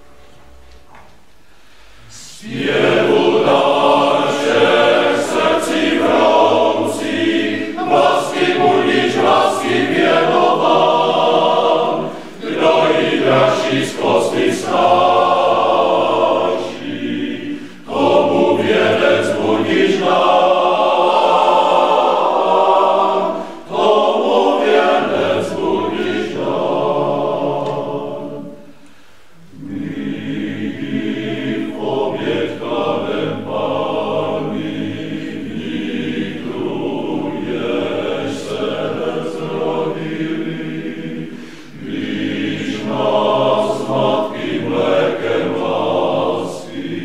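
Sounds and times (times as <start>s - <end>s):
male choir singing a cappella: 2.0s - 28.8s, 29.4s - 47.0s.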